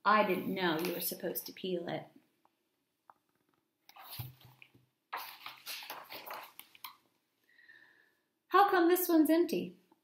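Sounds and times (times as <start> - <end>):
book pages turning: 0.8 - 1.2, 3.9 - 7.1.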